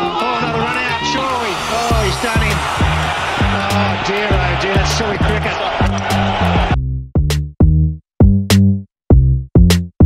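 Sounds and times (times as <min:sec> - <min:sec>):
stadium crowd noise: 0:00.0 - 0:06.8
music with beat and bass line: 0:01.1 - 0:10.0.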